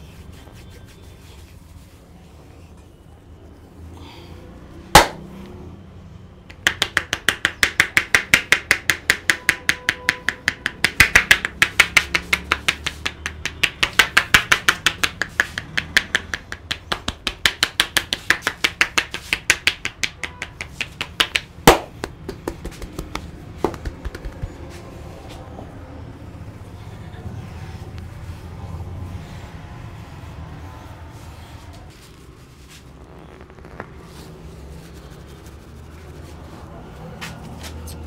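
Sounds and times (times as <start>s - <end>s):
hands slapping on head: 4.9s - 5.3s, 6.5s - 24.9s
loud sharp crack: 5.0s - 5.2s.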